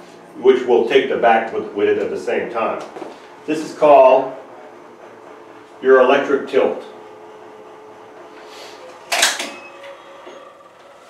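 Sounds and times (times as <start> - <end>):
electric actuator humming: 0.0 - 11.0.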